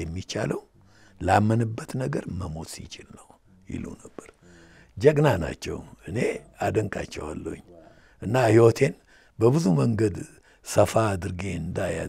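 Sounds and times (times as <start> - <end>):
soft murmured speech: 6.2 - 8.1.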